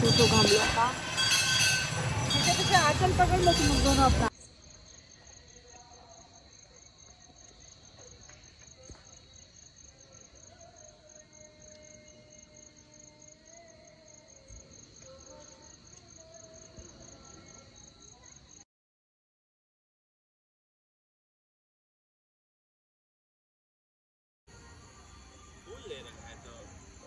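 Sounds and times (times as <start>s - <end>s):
crickets chirping: 0.0s - 18.6s, 24.5s - 27.0s.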